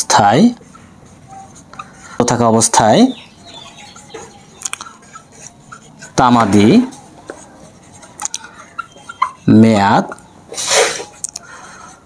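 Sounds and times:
marker ticking on whiteboard: 0:03.9 - 0:06.2, 0:06.9 - 0:09.4
man breathing sharply: 0:11.4 - 0:12.0.

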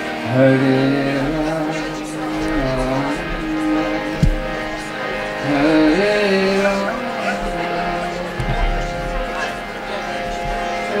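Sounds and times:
harmonium: 0:00.0 - 0:11.0
person singing drawn-out notes: 0:00.0 - 0:11.0.

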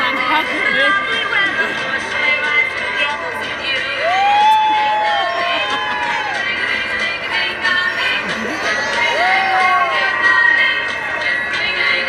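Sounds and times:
audience chatter: 0:00.0 - 0:12.0
children's dance music with singing: 0:00.0 - 0:12.0.

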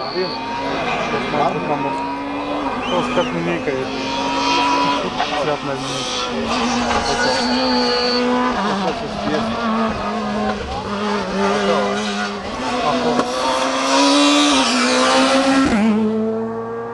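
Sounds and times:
spectators' voices: 0:00.0 - 0:15.5
rally car engine changing gear: 0:00.3 - 0:16.9.

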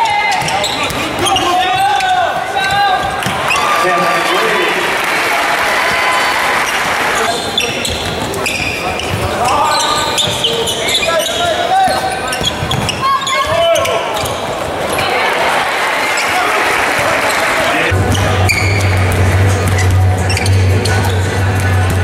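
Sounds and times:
basketball bouncing on court: 0:00.0 - 0:03.6, 0:05.8 - 0:15.1, 0:17.9 - 0:20.5
sneakers squeaking: 0:00.0 - 0:04.5, 0:05.8 - 0:22.0
voices of players and crowd: 0:00.0 - 0:22.0.

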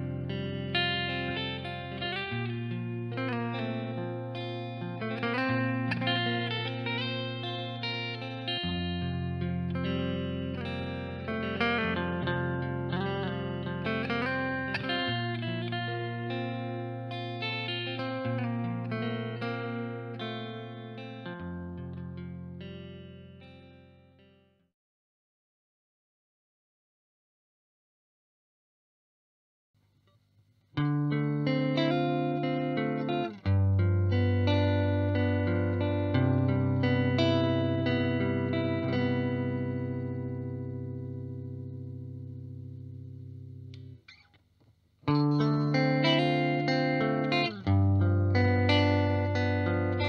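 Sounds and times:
electric guitar lead with bends: 0:00.0 - 0:24.4, 0:30.8 - 0:44.3, 0:45.0 - 0:50.0.

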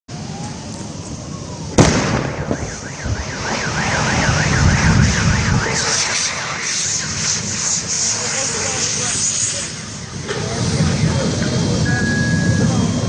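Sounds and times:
fire roaring: 0:00.2 - 0:10.2
explosion blast: 0:01.8 - 0:08.3
car alarm warbling: 0:02.0 - 0:07.9.

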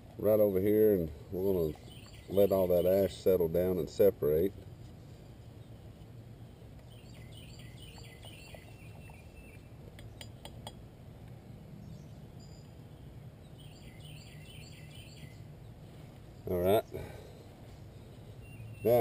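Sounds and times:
birds chirping: 0:00.2 - 0:04.7, 0:05.4 - 0:19.0.

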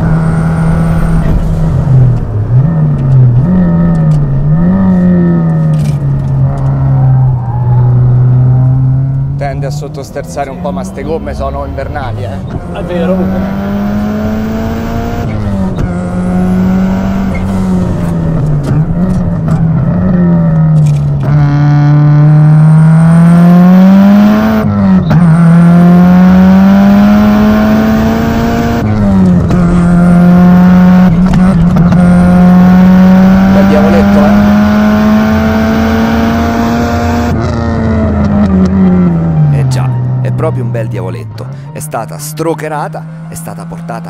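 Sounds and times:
car engine accelerating through gears: 0:00.0 - 0:40.8, 0:41.4 - 0:44.0.

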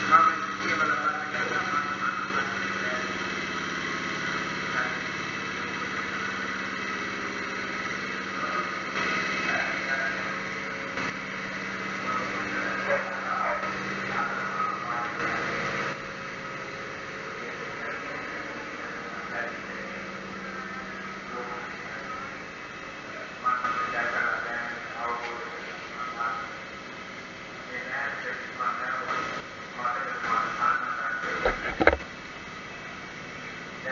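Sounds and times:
low mechanical hum: 0:00.0 - 0:33.9.

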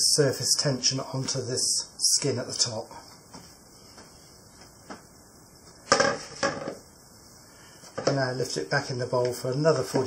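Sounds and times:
plastic bowl clattering on worktop: 0:05.9 - 0:06.8
plastic bowl knocking on worktop: 0:05.9 - 0:06.8.

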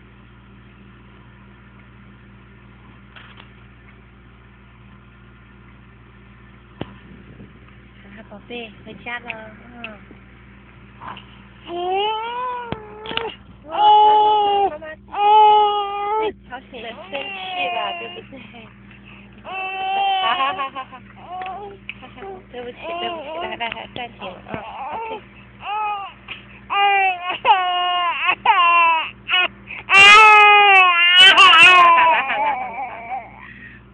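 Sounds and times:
baby crying: 0:11.7 - 0:16.3, 0:17.0 - 0:18.3, 0:19.4 - 0:21.8, 0:24.6 - 0:33.4.

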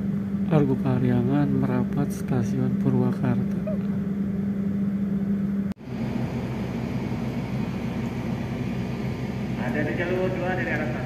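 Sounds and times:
train hum inside coach: 0:00.0 - 0:11.0.

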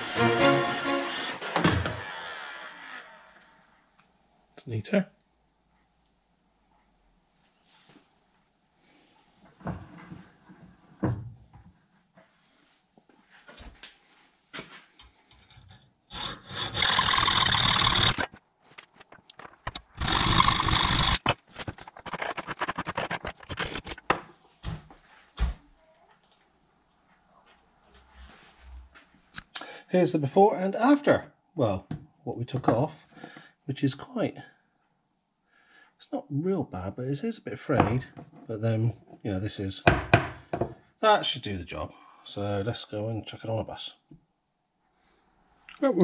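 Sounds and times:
power tool whining: 0:00.0 - 0:03.8, 0:16.1 - 0:18.4, 0:19.7 - 0:21.4
short scraping strokes: 0:19.7 - 0:24.0.

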